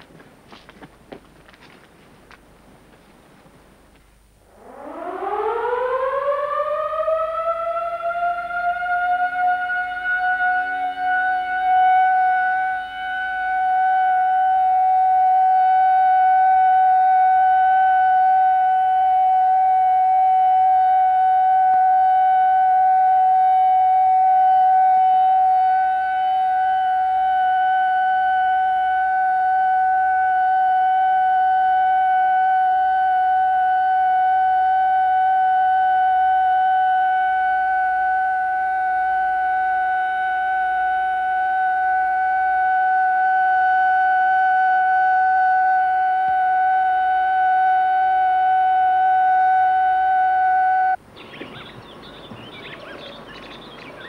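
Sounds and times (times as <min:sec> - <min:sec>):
steady loud tone: 0:04.2 - 0:51.1.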